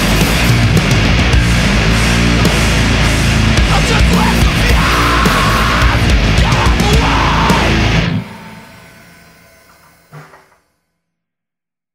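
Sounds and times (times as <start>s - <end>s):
heavy rock song: 0.0s - 9.8s
distorted electric guitar chord ringing: 0.0s - 9.9s.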